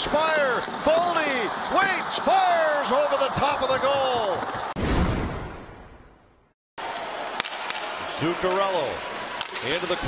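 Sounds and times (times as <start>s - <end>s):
arena crowd hum: 0.0s - 4.8s, 6.8s - 10.0s
hockey stick hitting puck: 7.3s - 8.0s, 9.3s - 10.0s.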